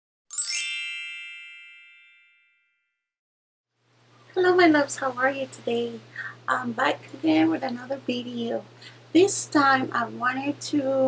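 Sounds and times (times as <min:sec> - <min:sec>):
bright chime: 0:00.3 - 0:02.8.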